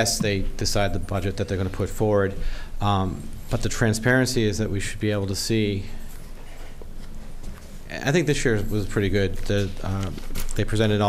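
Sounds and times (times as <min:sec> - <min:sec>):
meeting hall room noise: 0:00.0 - 0:11.0.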